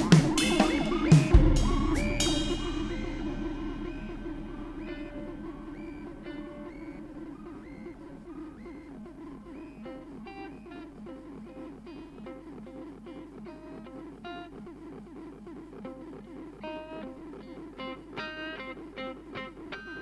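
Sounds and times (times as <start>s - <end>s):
drum hit ringing: 0.0s - 8.7s
held wavering tone: 0.0s - 14.5s
electric guitar single notes: 0.0s - 20.0s.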